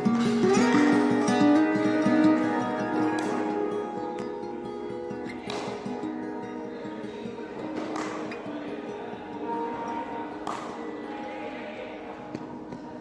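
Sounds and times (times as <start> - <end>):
sustained background music: 0.0 - 12.0.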